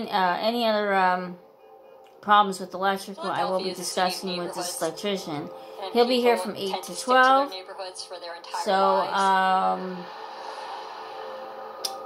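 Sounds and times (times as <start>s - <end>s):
faint background music or tv: 0.0s - 12.0s.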